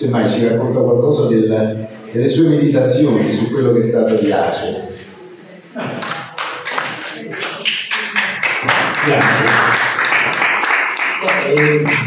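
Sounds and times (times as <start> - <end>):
people clapping: 5.9 - 12.0.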